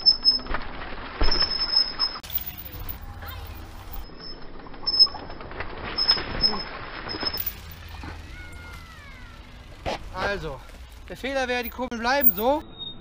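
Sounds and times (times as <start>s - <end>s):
bike tyres crunching over grit: 5.4s - 12.6s.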